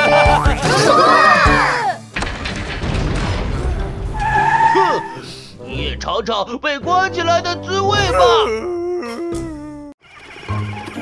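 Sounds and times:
high tyre squeal: 0:04.2 - 0:05.3.

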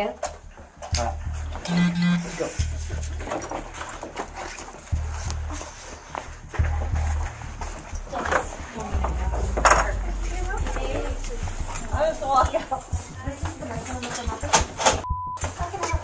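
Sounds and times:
deep bass music: 0:00.0 - 0:16.0
faint indistinct voices: 0:00.0 - 0:16.0.

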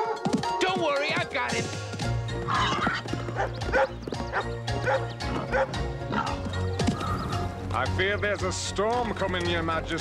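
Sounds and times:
dogs barking: 0:00.0 - 0:00.6, 0:02.4 - 0:07.0.

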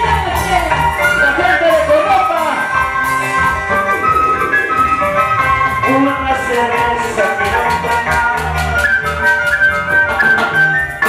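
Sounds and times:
bass notes: 0:00.0 - 0:11.0
flute melody: 0:00.0 - 0:11.0
timbales beat: 0:01.8 - 0:11.0.

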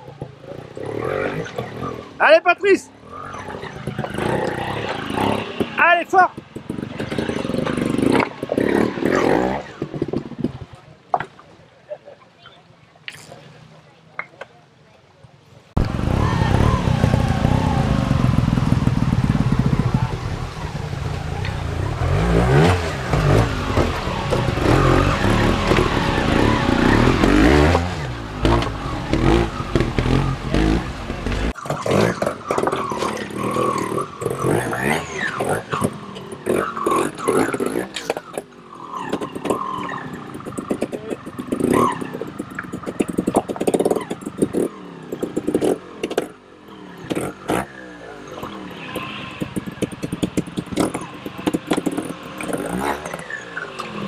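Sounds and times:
motorcycle engine revving: 0:00.0 - 0:02.3, 0:02.9 - 0:10.9, 0:15.8 - 0:54.0.

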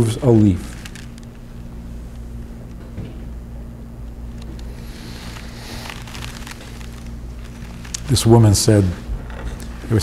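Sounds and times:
steady low hum: 0:00.0 - 0:10.0
rustles: 0:05.2 - 0:08.2.

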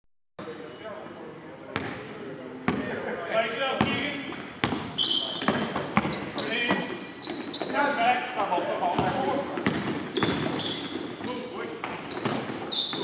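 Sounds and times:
basketball bouncing on hardwood floor: 0:04.6 - 0:06.2, 0:09.0 - 0:11.2.

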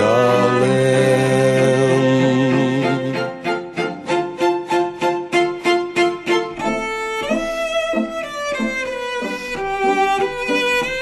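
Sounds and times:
gothic rock violin passage: 0:00.0 - 0:11.0.

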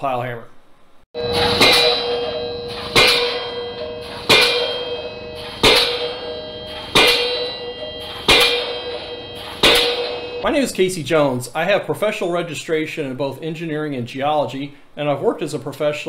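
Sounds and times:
pile hammer metallic clangs: 0:01.2 - 0:11.1.

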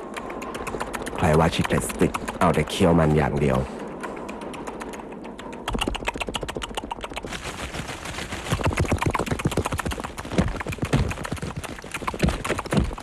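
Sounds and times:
rapid sharp clicks: 0:00.0 - 0:13.0.

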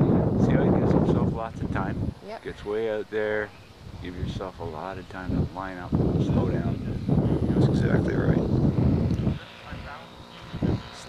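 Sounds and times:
model airplane engine drone: 0:00.0 - 0:11.0
muffled voices: 0:00.0 - 0:11.0
wind buffeting microphone: 0:00.0 - 0:11.0.

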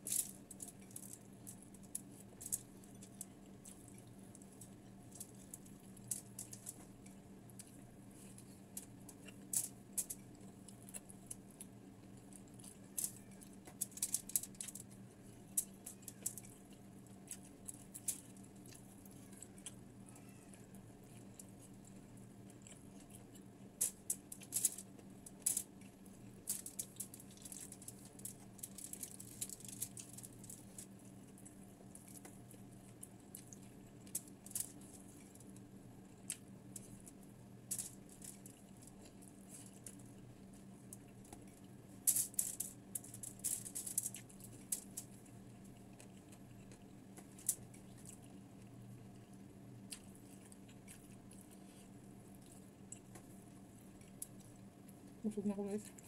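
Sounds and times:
steady low hum: 0:00.0 - 0:56.0
chewing crunches: 0:00.3 - 0:37.2, 0:37.9 - 0:41.8, 0:42.8 - 0:55.2
fingers on aluminium foil: 0:12.9 - 0:14.9, 0:23.8 - 0:25.7, 0:26.4 - 0:31.0.

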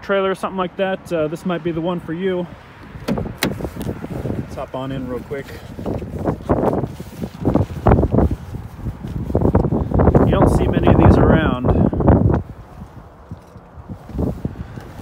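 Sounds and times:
man talking indistinctly: 0:10.2 - 0:12.0.

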